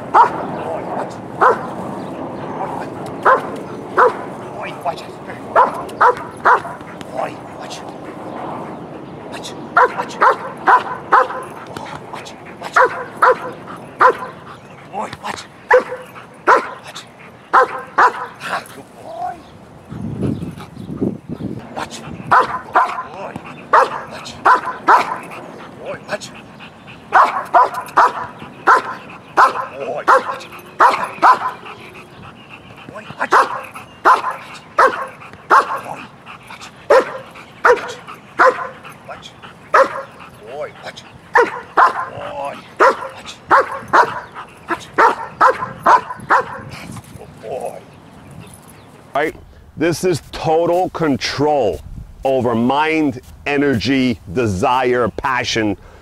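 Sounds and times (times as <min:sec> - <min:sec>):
large dog barking: 0:00.0 - 0:01.8, 0:02.5 - 0:08.7, 0:09.6 - 0:14.7, 0:15.6 - 0:18.7, 0:21.8 - 0:26.1, 0:27.0 - 0:32.4, 0:33.0 - 0:40.7, 0:41.3 - 0:46.8.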